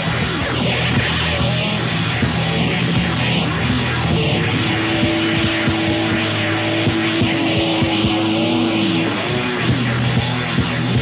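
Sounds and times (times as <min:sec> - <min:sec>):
droning noisy rock band: 0:00.0 - 0:11.0
electric guitar sustained note: 0:00.0 - 0:11.0
drum hits: 0:02.9 - 0:10.2.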